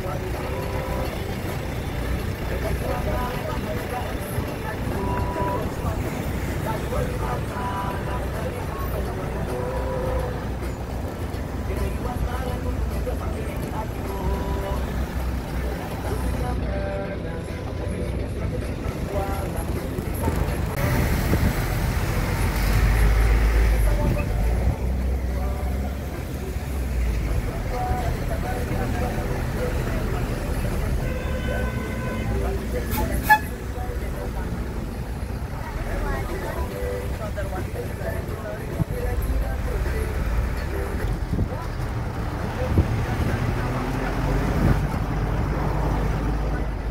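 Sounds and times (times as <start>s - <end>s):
bus engine rumble: 0.0s - 46.9s
indistinct voices: 0.0s - 46.9s
road traffic: 0.0s - 46.9s
vehicle horn: 30.8s - 33.7s.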